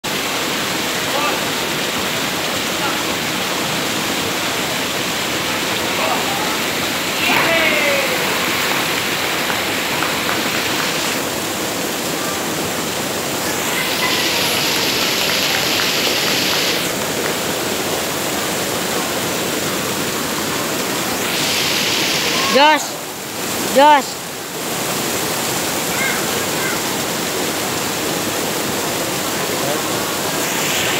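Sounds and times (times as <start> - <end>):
waterfall rushing: 0.0 - 30.9
person shouting: 7.2 - 8.4.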